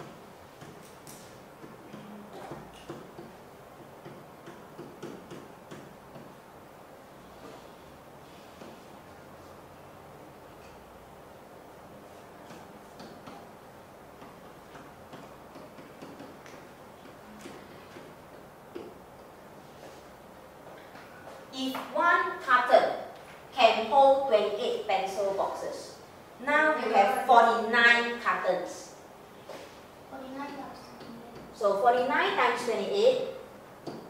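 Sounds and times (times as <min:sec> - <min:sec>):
pen tapping on whiteboard: 0:00.0 - 0:06.4, 0:14.1 - 0:19.3.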